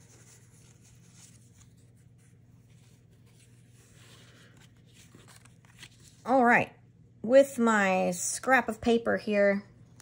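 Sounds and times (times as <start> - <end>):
cardstock rustling: 0.0 - 6.3
low steady hum: 0.0 - 10.0.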